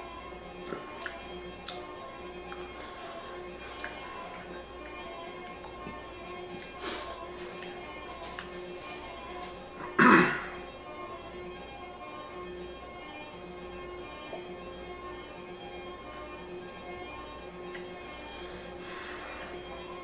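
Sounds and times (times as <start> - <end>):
faint background music: 0.0 - 20.0
man clearing his throat: 9.9 - 10.5.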